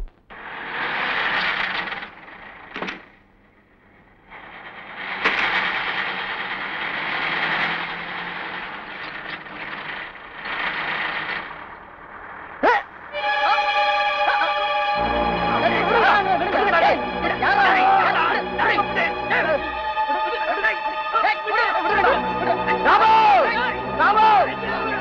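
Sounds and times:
van engine and tyres: 0.1 - 13.2.

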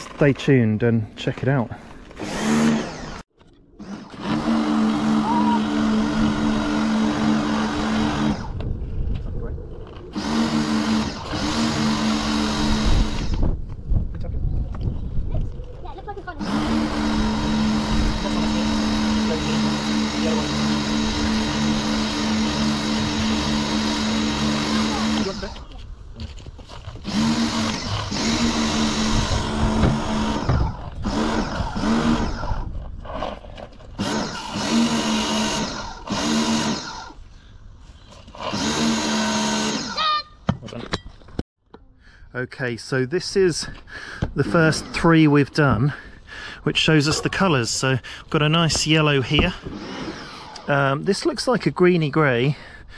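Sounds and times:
pressure washer pump humming: 3.8 - 8.5, 10.1 - 13.4, 16.4 - 25.7, 27.0 - 32.6, 34.0 - 37.2.

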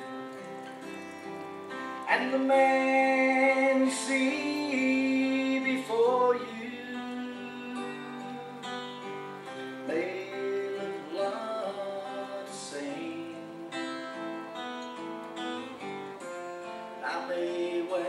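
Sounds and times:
acoustic guitar strumming: 0.0 - 18.0
man singing: 1.9 - 14.6, 16.9 - 18.0.

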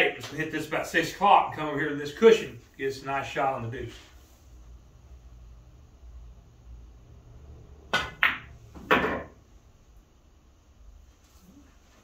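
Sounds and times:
cue tip striking cue ball: 7.9 - 9.4.

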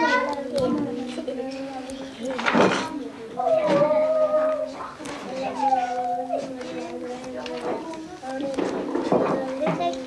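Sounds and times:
child singing long notes: 3.0 - 10.0.

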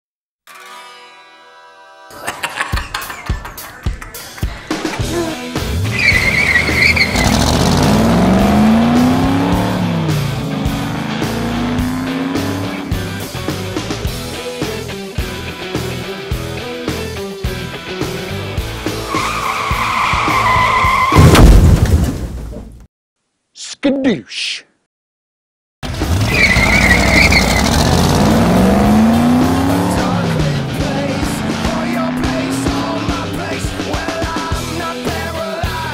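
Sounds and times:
road rumble: 4.3 - 16.7, 25.8 - 35.3
car engine revving: 5.0 - 14.3, 25.8 - 34.8
car tyres squealing: 5.7 - 10.3, 19.0 - 21.3, 26.0 - 33.2.

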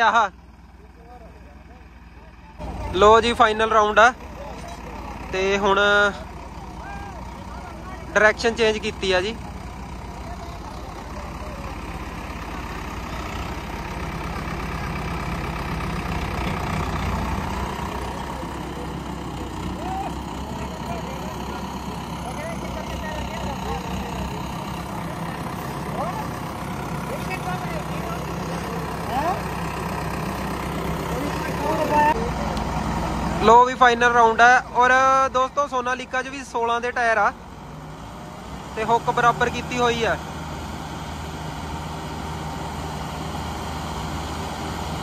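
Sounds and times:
diesel tractor engines running: 0.0 - 45.0
faint voices: 0.7 - 35.5.

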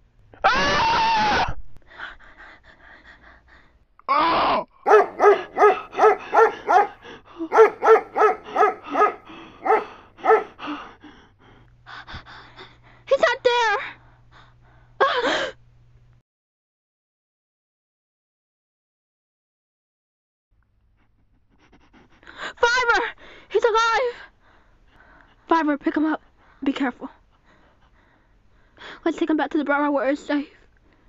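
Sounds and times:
long scream: 0.4 - 1.6
dog barking: 4.8 - 10.6.

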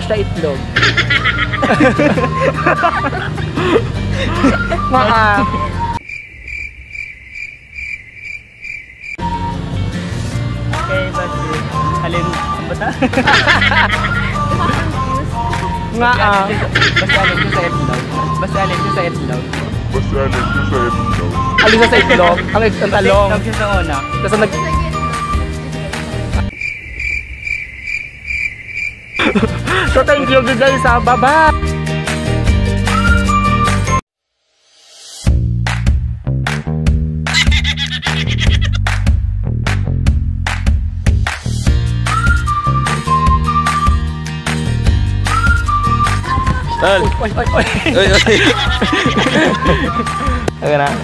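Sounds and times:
music: 0.0 - 6.0, 9.2 - 26.5, 29.3 - 51.0
cricket chirping: 6.0 - 9.3, 26.5 - 29.6.

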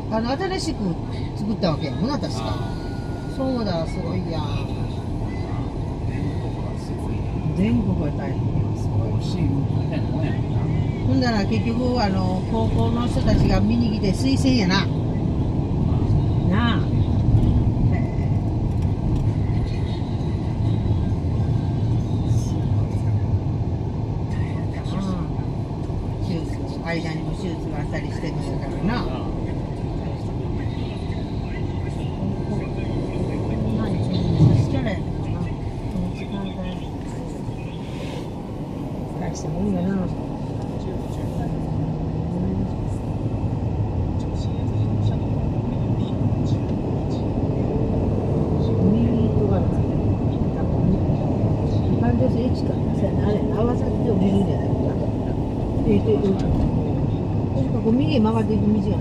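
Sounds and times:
car cabin road rumble: 0.0 - 59.0.

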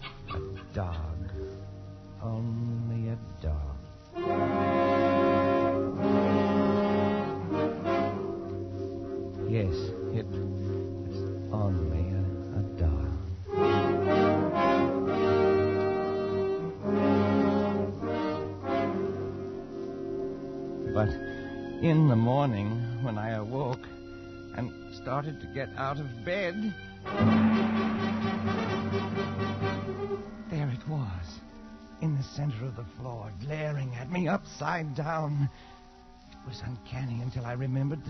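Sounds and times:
dog cries: 0.0 - 1.1
dramatic music chords: 4.2 - 32.1.

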